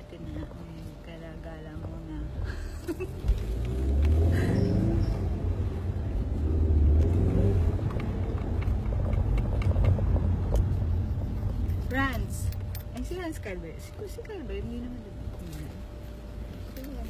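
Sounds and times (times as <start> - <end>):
car cabin rumble: 0.0 - 13.6.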